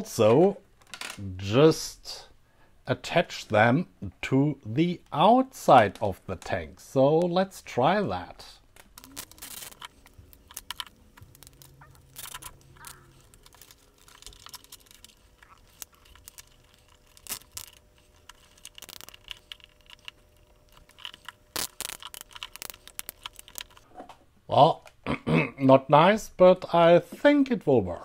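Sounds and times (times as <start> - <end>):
hands rustling foil: 8.7 - 23.8
cable tie ratcheting clicks: 8.8 - 23.8.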